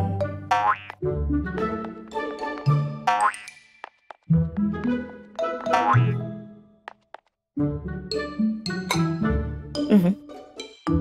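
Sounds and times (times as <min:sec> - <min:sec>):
playful cartoon music: 0:00.0 - 0:07.0, 0:07.6 - 0:11.0.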